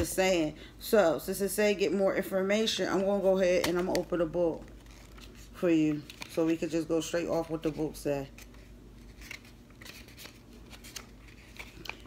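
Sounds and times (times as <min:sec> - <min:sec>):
book pages turning: 0:03.0 - 0:12.0.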